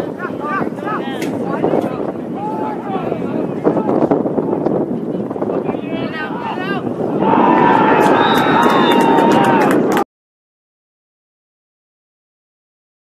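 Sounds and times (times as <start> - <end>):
voices cheering and shouting: 0.0 - 4.6, 5.5 - 10.0.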